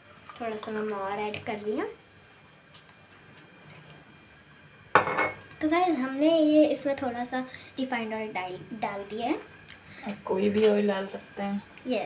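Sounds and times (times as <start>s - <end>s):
kitchenware clanking and ringing: 5.0s - 5.4s.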